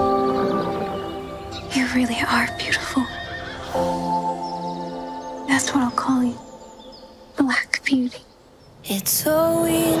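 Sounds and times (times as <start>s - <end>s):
orchestral trailer music: 0.0s - 7.6s
horse whinnying: 2.7s - 4.0s.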